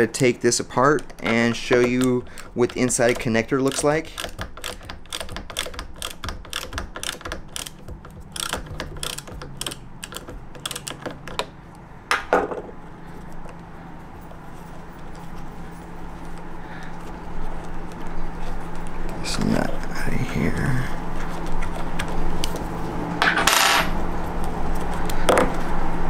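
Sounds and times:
quiet handling: 0.0s - 4.4s
rapid light clicking of nut: 1.1s - 11.5s.

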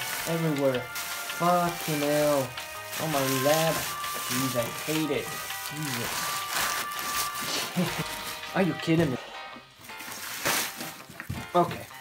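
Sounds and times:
rustling of shredded paper packing: 0.0s - 9.1s, 9.8s - 12.0s
light background music: 0.0s - 12.0s.

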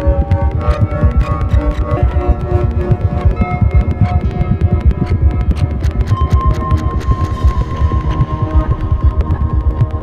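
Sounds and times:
low throbbing synth pulse: 0.0s - 10.0s.

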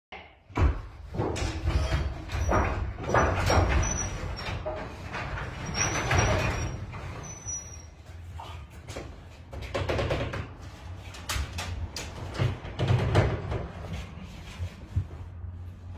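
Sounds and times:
garage door panels rattling: 0.5s - 7.7s, 9.0s - 14.4s
garage door opener rumble: 1.3s - 7.7s.

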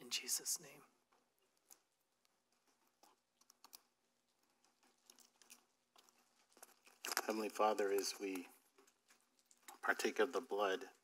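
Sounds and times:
small cups clicking: 1.1s - 11.0s
wrappers crinkling: 1.5s - 10.4s.

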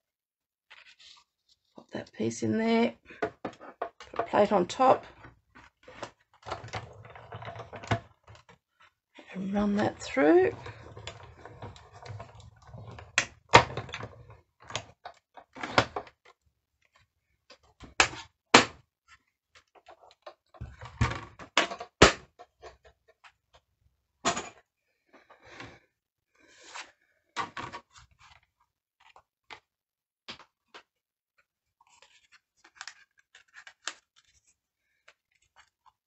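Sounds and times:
paper rustling: 0.7s - 1.8s, 31.8s - 36.0s.

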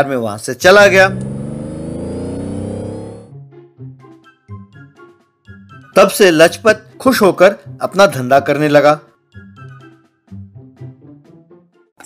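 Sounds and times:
car engine accelerating: 0.6s - 3.3s.

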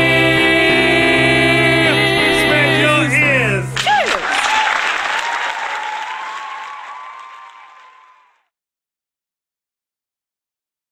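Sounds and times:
song with accompaniment: 0.0s - 3.9s
vocal whoop: 3.8s - 8.4s
audience applause: 3.8s - 8.5s.

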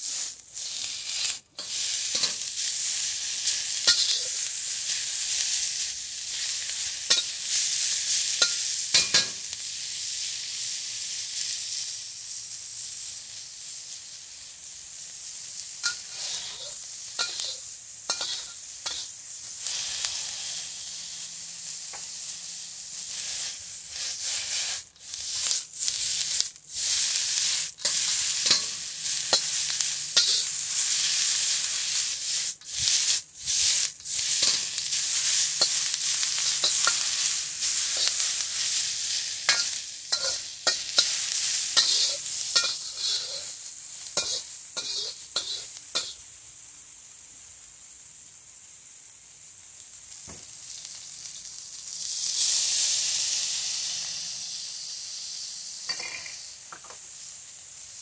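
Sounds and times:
metal spatula scraping wok: 0.0s - 5.5s, 6.3s - 9.5s, 15.8s - 20.6s, 23.0s - 46.2s, 55.9s - 57.0s
vegetables sizzling in oil: 0.0s - 58.0s.

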